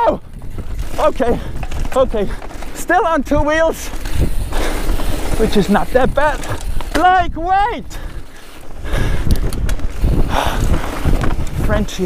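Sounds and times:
bike tyre rumble on dirt: 0.0s - 12.0s
wind buffeting microphone: 0.0s - 12.0s
bike rattling knocks: 0.3s - 7.6s.

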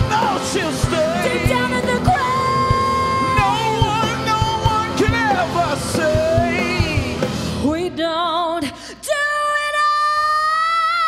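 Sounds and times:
live rock band playing: 0.0s - 8.4s.

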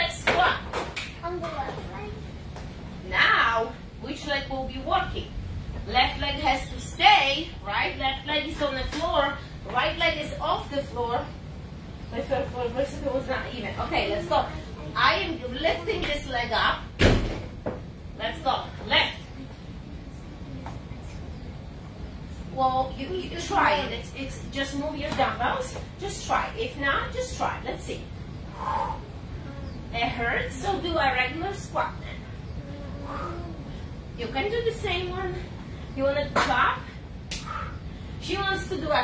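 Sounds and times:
voices talking: 0.0s - 17.0s, 17.9s - 39.0s.

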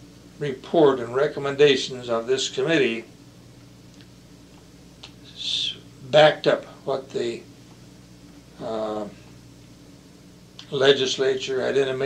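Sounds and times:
steady low hum: 0.0s - 12.0s
mouth click: 3.9s - 5.2s.

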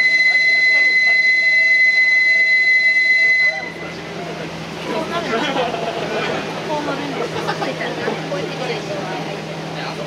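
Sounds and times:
high-pitched whistle tone: 0.0s - 4.0s.

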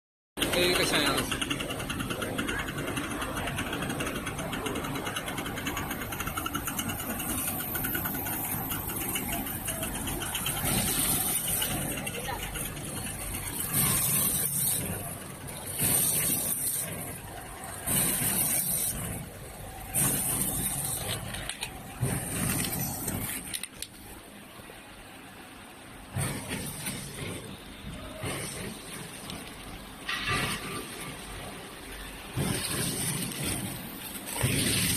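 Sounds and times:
packing machine running: 0.4s - 34.9s
bursts of hiss: 5.0s - 24.6s, 26.1s - 34.9s.

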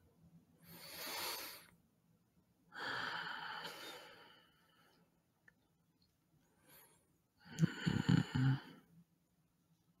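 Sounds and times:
faint breath: 2.7s - 5.1s
man sighing: 7.5s - 8.8s.

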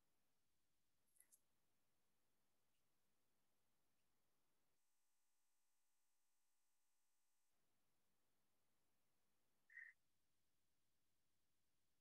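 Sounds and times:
faint high-pitched chirp: 9.5s - 10.1s.

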